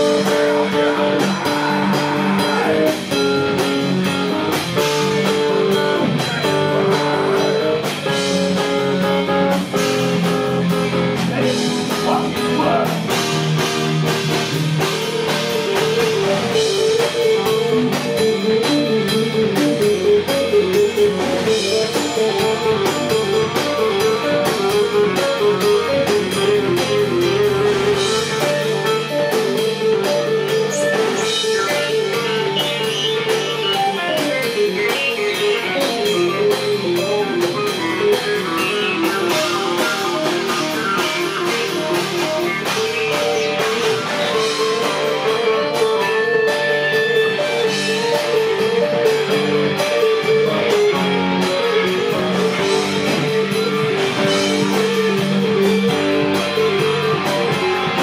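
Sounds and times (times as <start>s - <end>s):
rock band playing: 0.0s - 58.0s.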